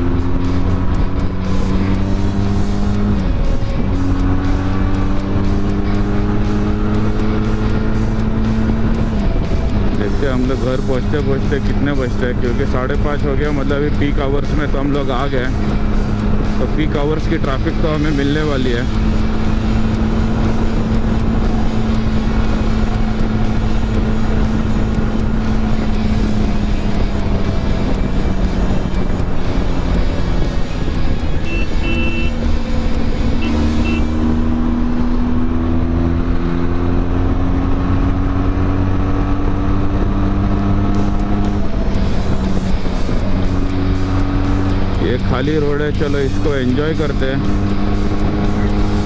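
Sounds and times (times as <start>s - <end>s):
heavy wind noise: 0.0s - 49.0s
motorcycle engine at speed: 0.0s - 49.0s.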